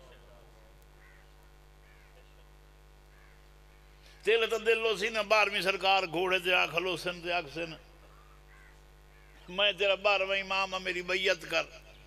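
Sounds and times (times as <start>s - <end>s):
man reciting into microphones: 4.2s - 7.8s, 9.5s - 11.9s.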